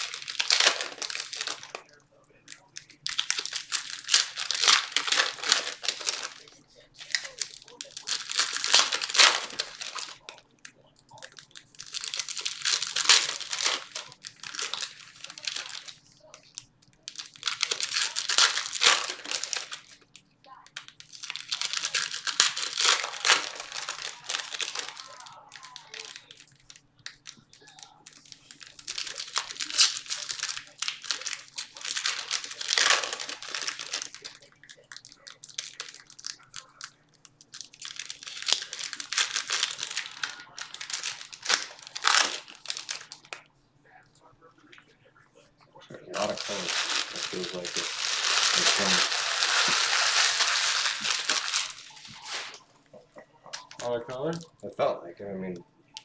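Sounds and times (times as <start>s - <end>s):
foil wrappers crinkling and tearing: 0.0s - 43.4s, 45.9s - 52.7s, 53.4s - 54.9s.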